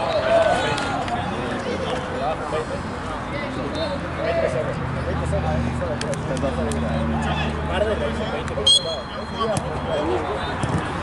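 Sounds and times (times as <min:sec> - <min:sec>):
players calling out: 0:06.9 - 0:10.6
referee whistle blast: 0:08.6 - 0:09.6.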